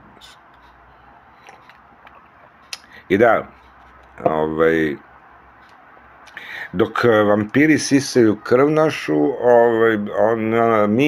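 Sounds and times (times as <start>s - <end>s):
soft mouth clicks: 1.4s - 2.9s.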